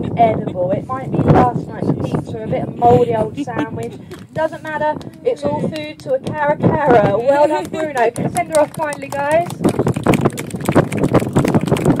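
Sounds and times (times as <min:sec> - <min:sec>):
audience applauding: 0:07.3 - 0:12.0.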